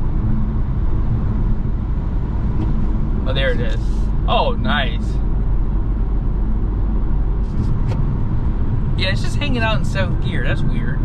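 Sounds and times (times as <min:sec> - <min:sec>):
road and tyre noise in car cabin: 0:00.0 - 0:11.0.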